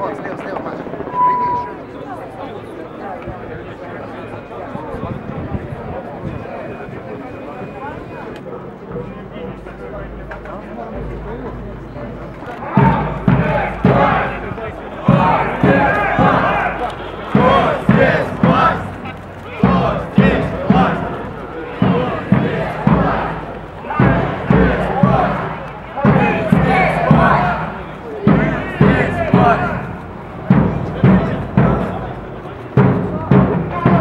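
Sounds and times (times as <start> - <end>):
crowd chanting slogans: 12.6 - 32.4.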